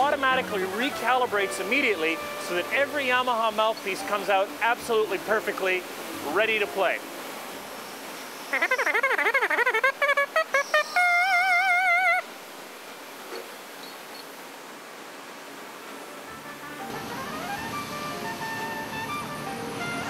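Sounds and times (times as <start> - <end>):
soft background music: 0.0 - 7.8, 15.8 - 20.0.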